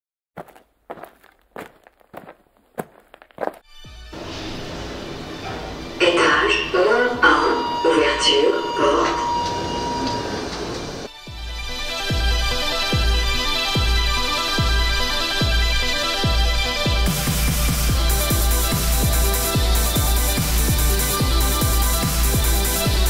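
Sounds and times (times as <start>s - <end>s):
steady background hum: 4.2s - 11.1s
people's voices: 6.0s - 9.7s.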